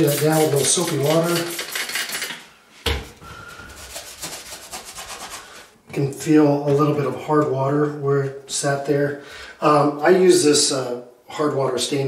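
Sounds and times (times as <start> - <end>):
sponge scrubbing wet surface: 0.0 - 2.2, 3.8 - 5.7.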